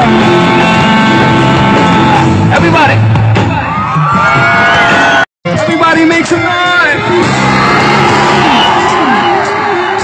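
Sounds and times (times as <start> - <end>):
electric guitar long held note: 0.0 - 2.5
live rock band playing: 0.0 - 10.0.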